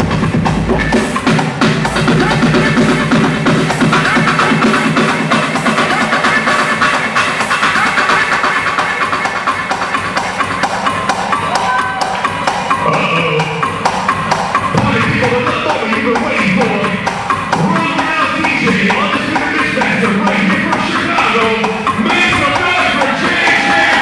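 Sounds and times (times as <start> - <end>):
club dance music: 0.0 - 24.0
driving drum beat: 0.0 - 24.0.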